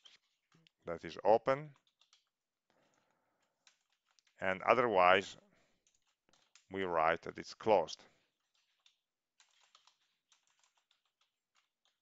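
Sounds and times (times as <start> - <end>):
computer keyboard typing: 1.8 - 2.3, 8.5 - 12.0.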